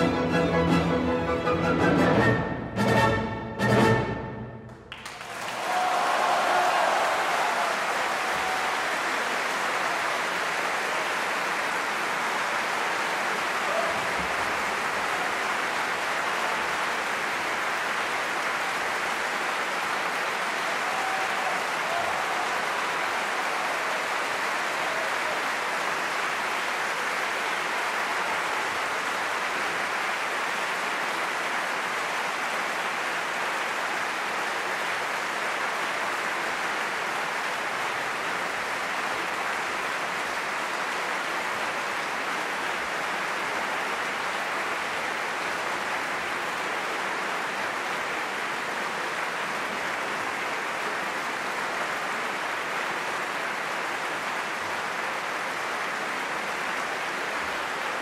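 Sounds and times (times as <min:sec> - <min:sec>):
audience applauding: 0:04.7 - 0:58.0.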